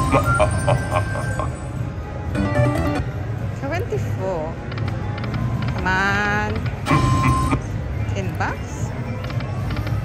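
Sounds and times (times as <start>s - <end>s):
slot machine sound effects: 0.0s - 3.2s, 6.8s - 7.6s.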